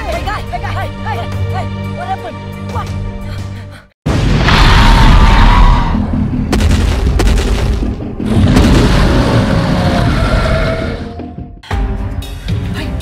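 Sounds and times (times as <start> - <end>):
deep booms: 4.1 - 10.6
dinosaur roar: 8.3 - 11.2.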